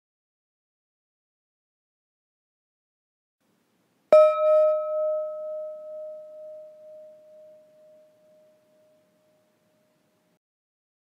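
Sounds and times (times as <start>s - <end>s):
meditation gong ringing: 4.2s - 10.0s.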